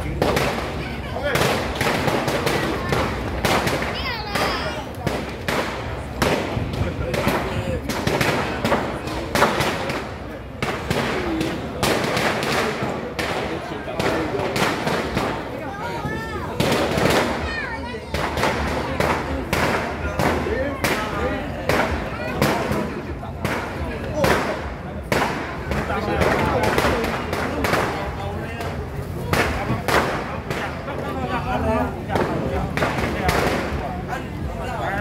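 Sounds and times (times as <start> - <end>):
firecrackers popping: 0.0 - 35.0
people's voices: 0.0 - 35.0.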